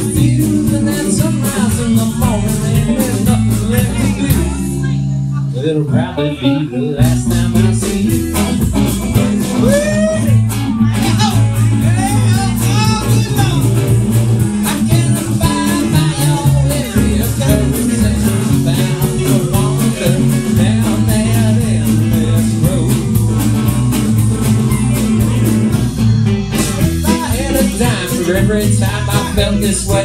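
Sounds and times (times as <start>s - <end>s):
drums keeping a steady beat: 0.0s - 6.3s, 7.0s - 30.0s
keyboard playing: 0.0s - 30.0s
resonator guitar: 0.0s - 30.0s
upright bass: 0.0s - 30.0s.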